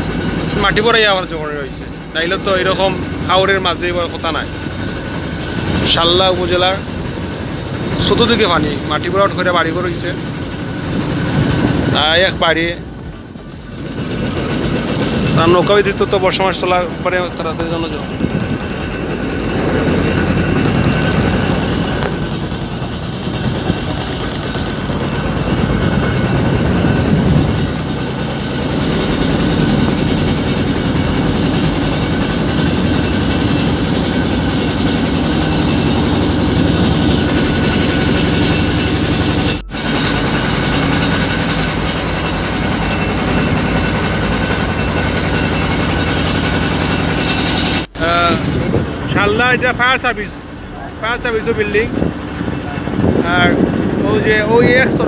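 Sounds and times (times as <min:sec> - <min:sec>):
motorboat engine running: 0:00.0 - 0:55.0.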